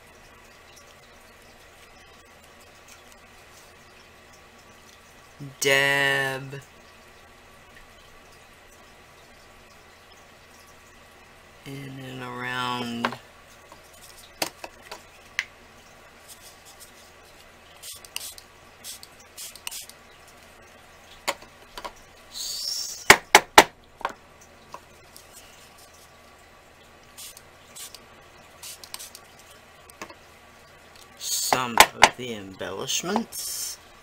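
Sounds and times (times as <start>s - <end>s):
craft tools tapping and clicking: 23.0s - 24.8s.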